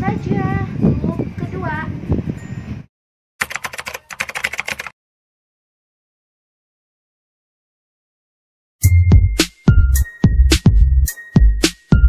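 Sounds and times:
outdoor wind: 0.0s - 2.9s
rapid keyboard typing clicks: 3.4s - 5.0s.

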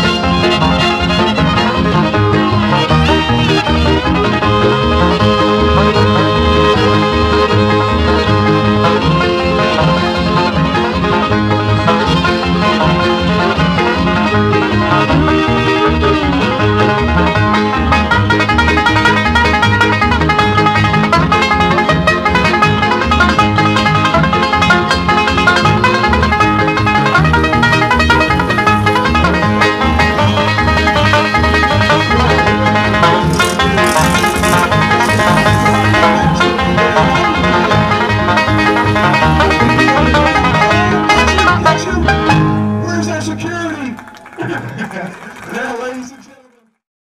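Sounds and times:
banjo bluegrass music: 0.0s - 46.1s.

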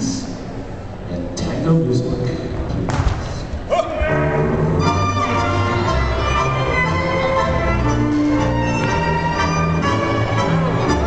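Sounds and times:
crowd murmur in a large hall: 0.0s - 11.0s
single thump: 2.9s - 3.5s.

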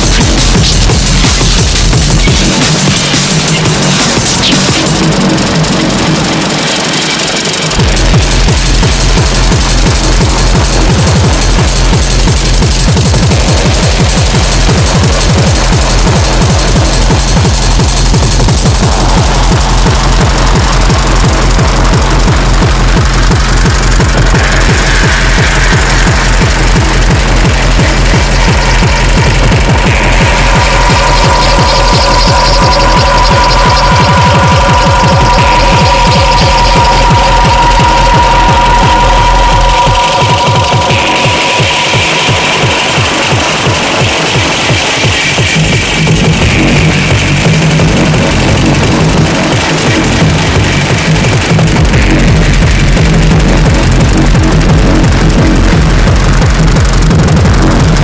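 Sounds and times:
pounding kick drum: 0.0s - 58.0s
sustained synth lines: 0.0s - 58.0s.

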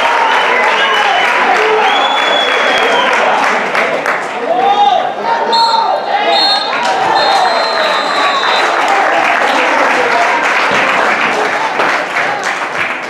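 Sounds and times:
crowd clapping and cheering: 0.0s - 5.0s, 6.6s - 13.0s
whistle blasts: 1.7s - 3.1s, 5.5s - 8.8s
players and spectators shouting: 4.4s - 10.4s.

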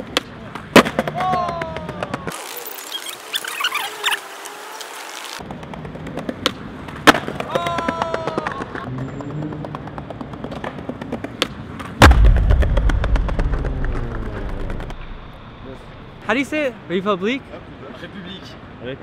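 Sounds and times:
skateboard clicks: 4.8s - 8.9s, 9.6s - 12.0s
skateboard pop crack: 5.6s - 7.6s
skateboard hard landing: 6.1s - 7.6s
skateboard wheels rumbling on stone: 9.6s - 15.0s.

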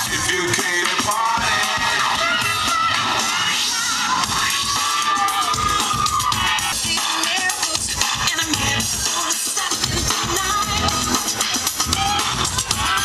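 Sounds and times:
music over loudspeakers: 0.0s - 13.0s.

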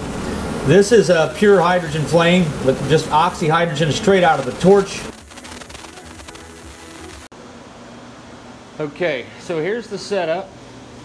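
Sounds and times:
torch flame hissing: 0.0s - 7.3s.

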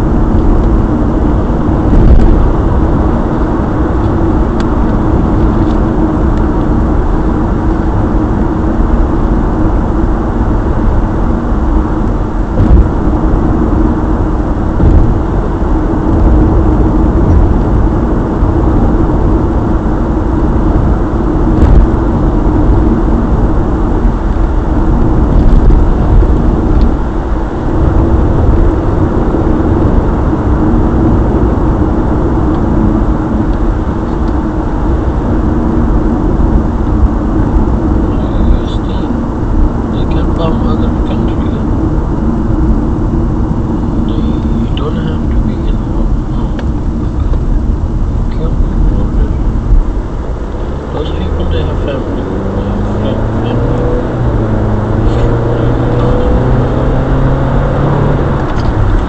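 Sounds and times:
engine and road rumble: 0.0s - 59.0s.

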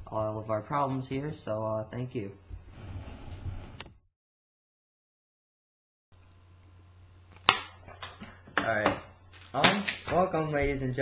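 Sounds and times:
low electrical hum: 0.0s - 4.0s, 6.1s - 11.0s.

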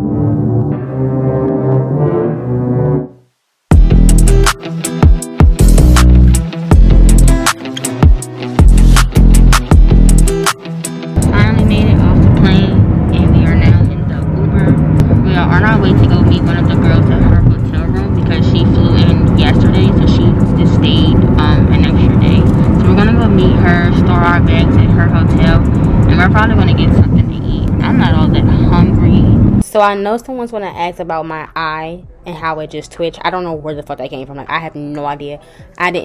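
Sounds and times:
music: 0.0s - 36.0s
road rumble inside moving car: 11.3s - 29.6s
voices: 11.3s - 36.0s.

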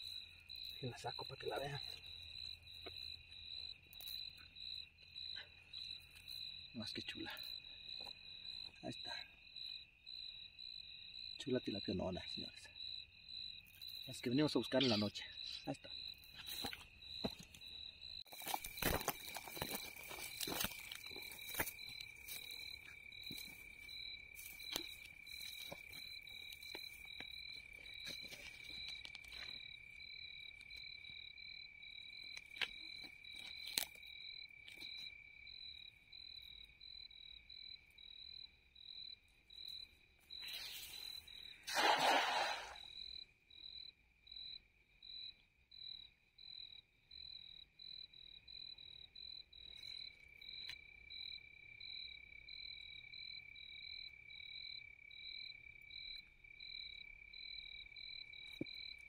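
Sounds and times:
insects pulsing chirps: 0.0s - 59.0s
insects trilling: 0.0s - 59.0s
cast net splashing into water: 41.6s - 42.9s.

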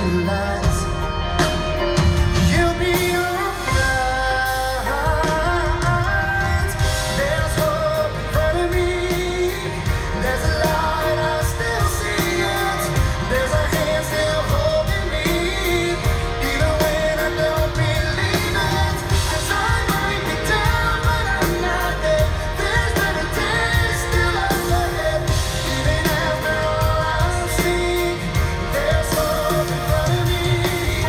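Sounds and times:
drums: 0.0s - 31.0s
keyboards: 0.0s - 31.0s
male singer singing: 0.0s - 31.0s.

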